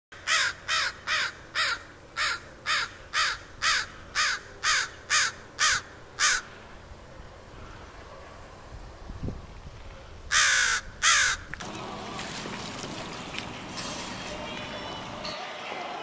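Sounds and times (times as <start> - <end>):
crow cawing: 0.2 - 6.6, 10.3 - 11.5.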